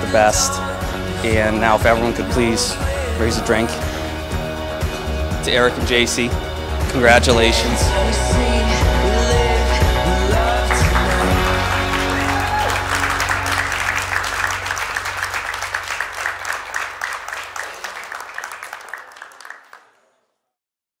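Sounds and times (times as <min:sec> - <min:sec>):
background music: 0:00.0 - 0:19.0
crowd applause: 0:10.3 - 0:20.2.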